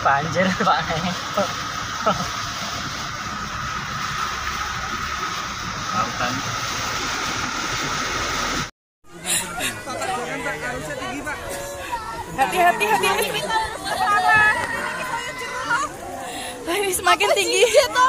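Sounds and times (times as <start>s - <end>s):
floodwater rushing: 0.0s - 18.0s
vehicle driving through floodwater: 0.0s - 18.0s
water washing against vehicle: 0.0s - 18.0s
voices chattering: 9.1s - 18.0s.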